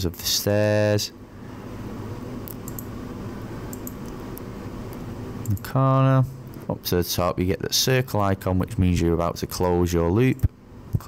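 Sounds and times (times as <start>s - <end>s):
low background noise: 0.0s - 11.0s
computer mouse clicks: 2.4s - 2.9s, 3.7s - 5.7s.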